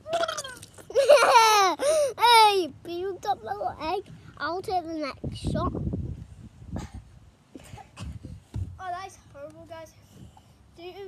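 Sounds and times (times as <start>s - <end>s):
boy laughing loudly: 0.8s - 2.2s.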